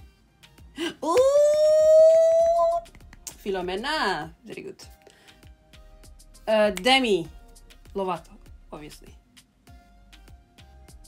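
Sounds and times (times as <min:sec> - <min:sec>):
woman's high-pitched exclamation: 0:01.0 - 0:02.8.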